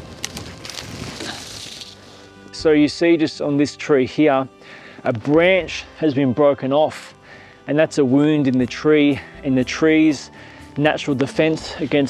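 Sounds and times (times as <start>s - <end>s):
steady rustling hiss: 0.0s - 2.5s
faint background music: 0.0s - 12.0s.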